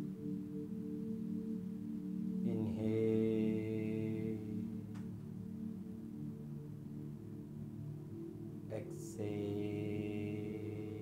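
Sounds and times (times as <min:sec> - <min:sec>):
long chanted tone: 0:00.0 - 0:11.0
low music drone: 0:00.0 - 0:11.0.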